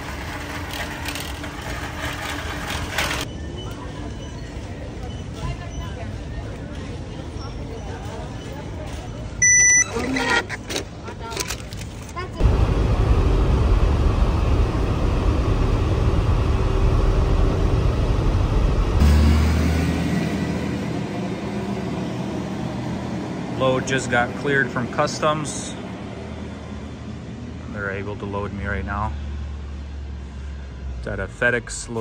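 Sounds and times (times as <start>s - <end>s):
truck engine and road noise: 0.0s - 32.0s
payment terminal beep: 9.4s - 10.4s
air handling hum: 12.4s - 19.1s.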